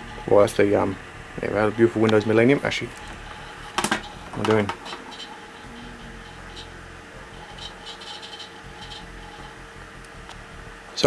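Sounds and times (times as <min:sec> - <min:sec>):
computers humming: 0:00.0 - 0:11.0.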